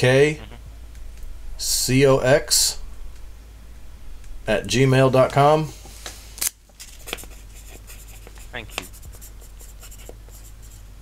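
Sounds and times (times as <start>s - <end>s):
light clicking and scratching: 6.7s - 9.3s.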